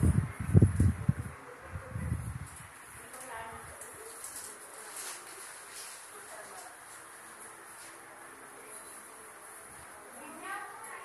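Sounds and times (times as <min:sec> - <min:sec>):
low rumbling microphone noise: 0:00.0 - 0:04.0.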